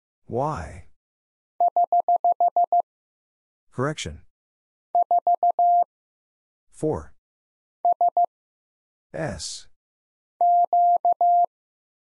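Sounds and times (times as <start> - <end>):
morse code beeps: 1.6 - 2.8, 5.0 - 5.9, 7.9 - 8.3, 10.4 - 11.5.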